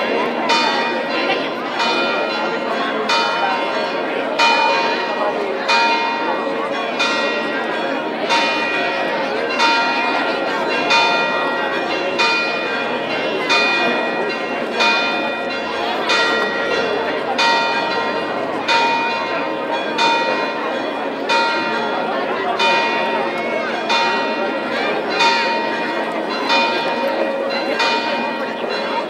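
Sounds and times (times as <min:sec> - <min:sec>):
church bell ringing: 0:00.0 - 0:29.0
crowd murmur: 0:00.0 - 0:29.0.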